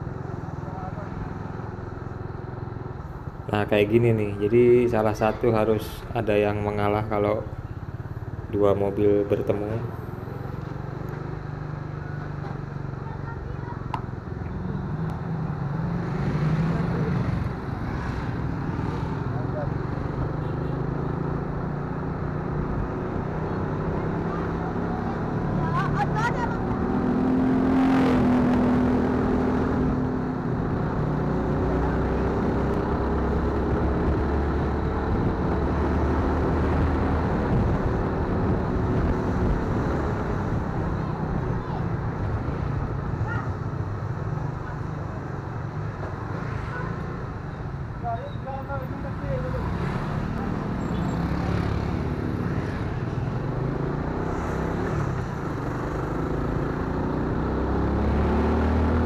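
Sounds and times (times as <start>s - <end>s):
road noise: 0.0s - 59.0s
wind: 0.0s - 59.0s.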